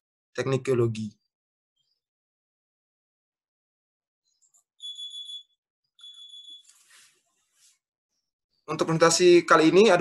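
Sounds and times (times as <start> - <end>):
high-pitched electronic beeps: 4.3 - 6.7.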